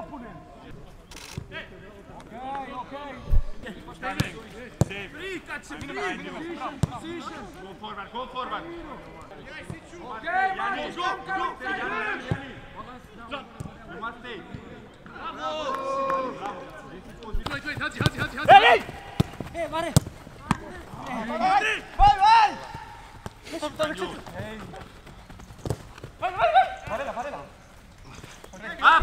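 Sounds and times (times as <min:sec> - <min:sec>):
players shouting: 0:05.0 - 0:12.7, 0:15.0 - 0:25.0, 0:25.7 - 0:29.0
football being kicked: 0:17.4 - 0:21.0, 0:25.4 - 0:26.2.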